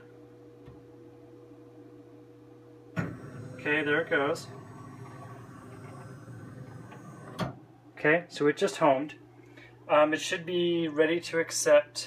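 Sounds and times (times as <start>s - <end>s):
stepper motors running: 3.0s - 7.6s.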